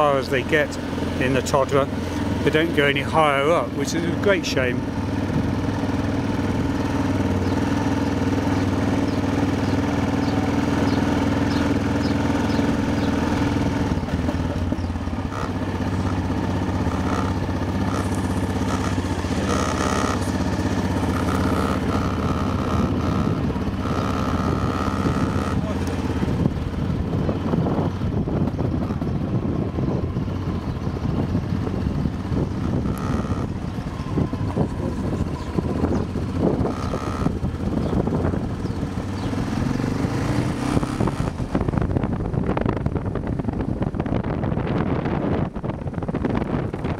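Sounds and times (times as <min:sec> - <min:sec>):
motorcycle engine running: 0:00.0 - 0:46.9
low rumbling noise: 0:13.2 - 0:46.9.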